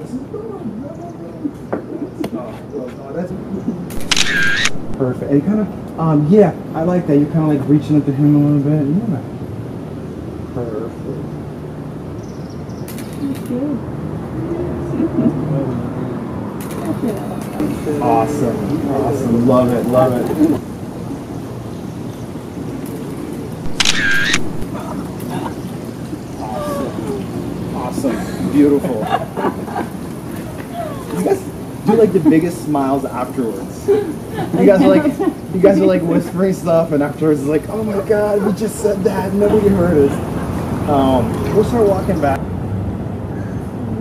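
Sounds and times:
camera shutter click: 0:03.9 - 0:05.0, 0:23.7 - 0:24.7
camera motor winding film: 0:04.0 - 0:04.9, 0:23.7 - 0:24.6.

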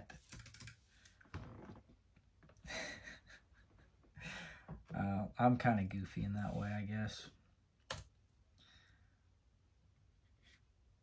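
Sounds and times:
man laughing softly: 0:02.6 - 0:04.4.

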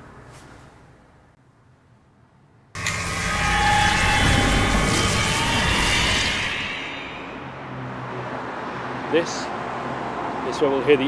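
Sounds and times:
loud rushing noise with rumble: 0:02.8 - 0:08.4.

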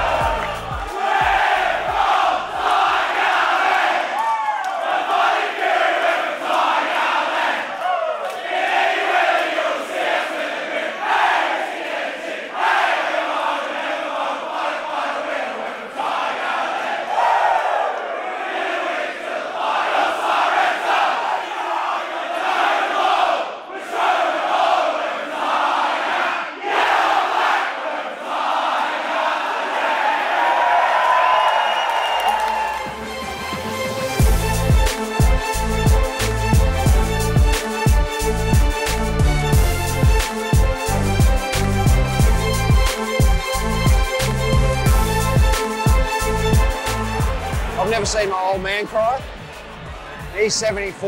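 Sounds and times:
crowd singing together: 0:00.0 - 0:04.2, 0:04.8 - 0:30.7
shouts and cheers: 0:02.9 - 0:05.2, 0:30.1 - 0:33.0.

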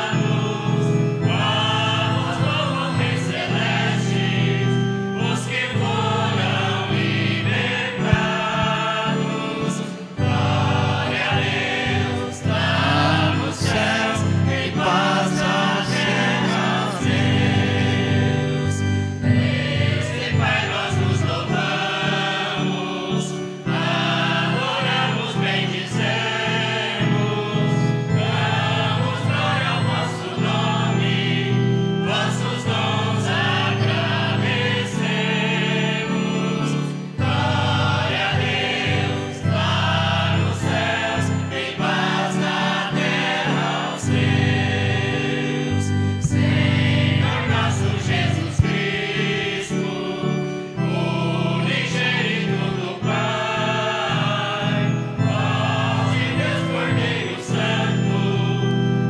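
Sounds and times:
choir singing a hymn: 0:00.0 - 0:59.0
sustained instrumental chords: 0:00.0 - 0:59.0.

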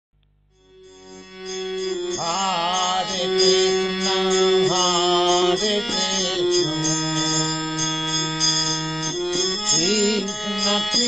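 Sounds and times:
high ringing tones: 0:00.5 - 0:11.0
steady held drone: 0:00.6 - 0:11.0
devotional chant singing: 0:02.0 - 0:11.0.

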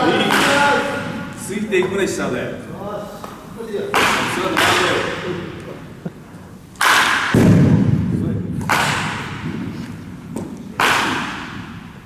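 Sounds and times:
baseball bat cracking ball: 0:00.1 - 0:01.2, 0:03.9 - 0:05.2, 0:06.8 - 0:12.0
heavy thud: 0:07.2 - 0:09.8.

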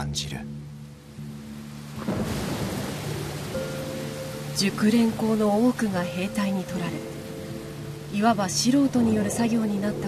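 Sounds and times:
soft background music: 0:00.0 - 0:10.0
steady rain: 0:00.0 - 0:10.0.

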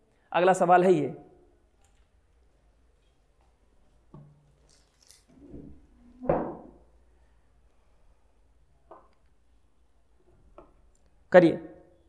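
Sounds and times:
faint rustling and handling: 0:01.8 - 0:06.0.

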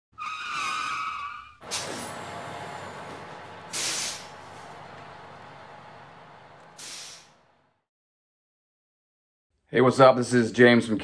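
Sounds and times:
high squeal: 0:00.1 - 0:02.3
short hiss: 0:01.6 - 0:02.2, 0:03.7 - 0:04.4, 0:06.8 - 0:07.4
steady rumble: 0:01.6 - 0:07.7.

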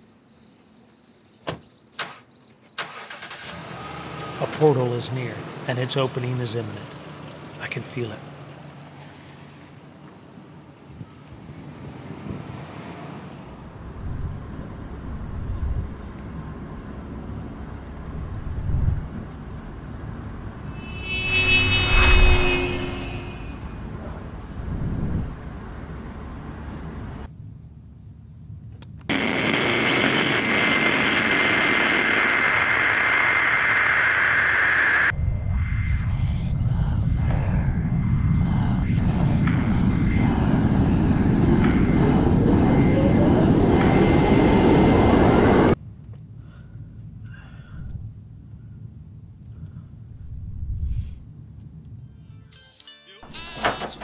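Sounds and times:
low rumble: 0:20.2 - 0:27.2, 0:35.1 - 0:45.8
passing whoosh with pitched tone: 0:20.4 - 0:25.6, 0:35.1 - 0:45.8
radio static hiss with whistle: 0:29.1 - 0:35.1.

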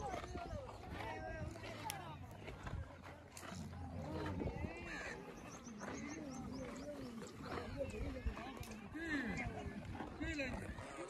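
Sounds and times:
camels groaning: 0:00.0 - 0:11.0.

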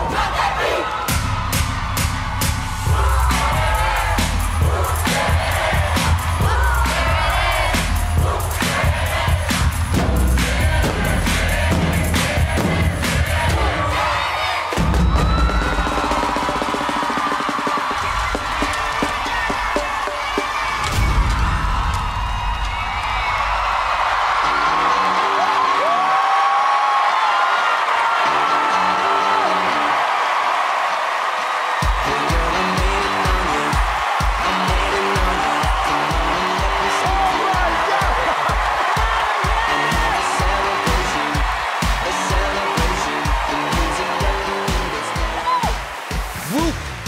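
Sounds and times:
pounding beat: 0:00.0 - 0:14.1, 0:14.7 - 0:21.2, 0:31.7 - 0:47.0
crowd cheering and whooping: 0:00.0 - 0:47.0
music: 0:00.0 - 0:47.0
snare and bass drums: 0:01.1 - 0:13.8, 0:14.7 - 0:21.6.

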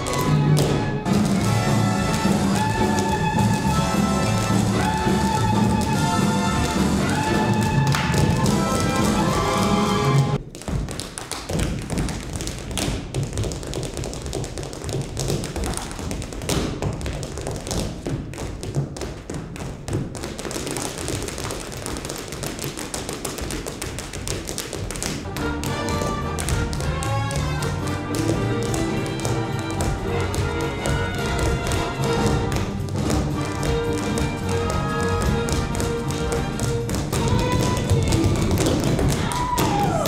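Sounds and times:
tap shoes striking the floor: 0:10.4 - 0:40.0.

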